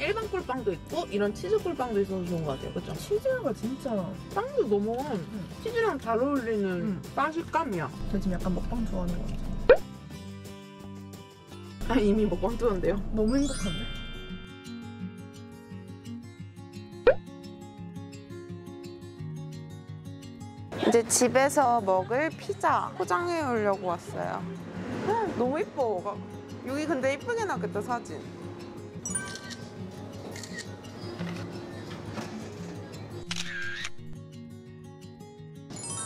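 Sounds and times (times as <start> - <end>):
light background music with guitar: 0.0 - 36.0
camera shutter: 33.2 - 34.2.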